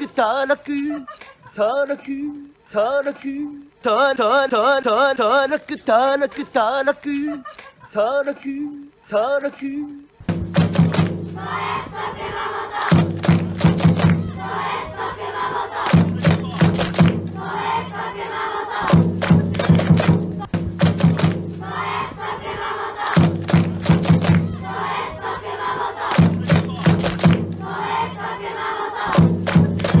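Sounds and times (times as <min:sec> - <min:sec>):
drum beats: 0:10.2 - 0:30.0
group chanting a cheer: 0:10.8 - 0:30.0.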